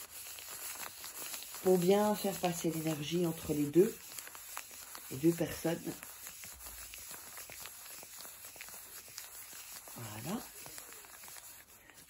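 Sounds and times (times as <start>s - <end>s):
paper rubbing together: 0.0s - 12.0s.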